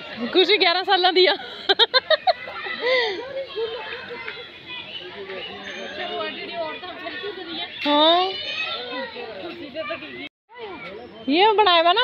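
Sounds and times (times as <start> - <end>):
children playing and calling out: 0.0 - 11.3.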